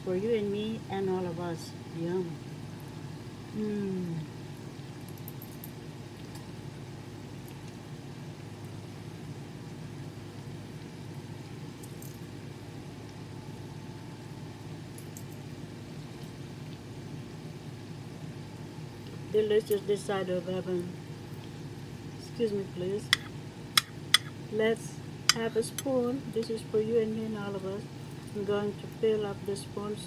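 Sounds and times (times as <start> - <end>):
low background hum: 0.0 - 30.0.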